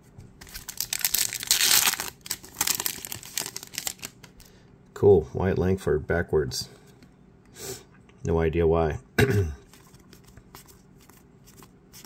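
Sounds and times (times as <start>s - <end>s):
foil wrapper tearing and crinkling: 0.4s - 4.2s.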